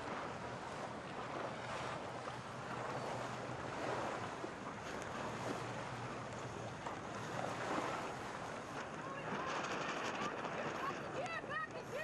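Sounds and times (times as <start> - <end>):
sea water rushing and splashing: 0.0 - 12.0
wind buffeting microphone: 0.0 - 12.0.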